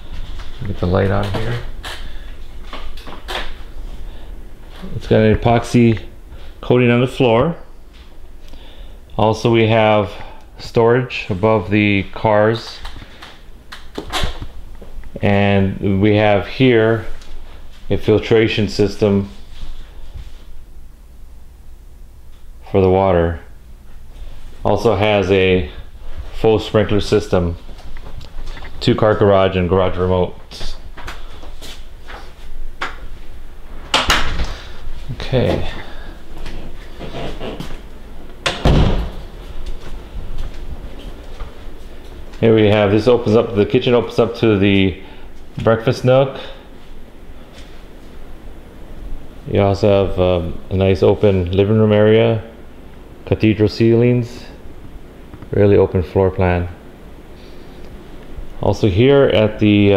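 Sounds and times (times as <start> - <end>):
low thump: 38.6 - 39.2.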